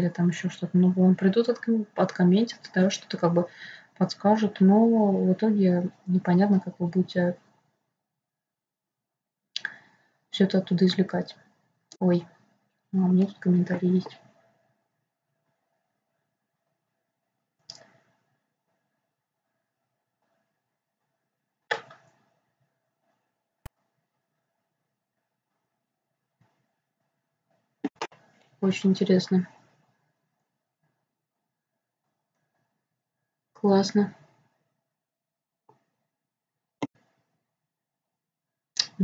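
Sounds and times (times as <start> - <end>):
woman speaking: 0.0 - 7.4, 10.4 - 11.4, 12.0 - 12.3, 13.0 - 14.2, 27.9 - 29.5, 33.6 - 34.2.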